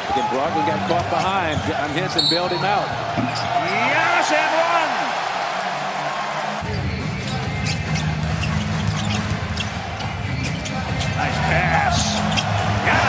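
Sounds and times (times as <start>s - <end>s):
crowd noise: 0.0s - 13.0s
low arena music: 0.4s - 13.0s.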